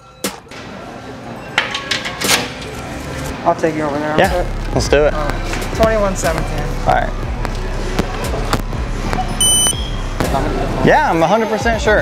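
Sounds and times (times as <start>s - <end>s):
store background noise: 0.0s - 12.0s
card terminal beep: 9.4s - 10.0s.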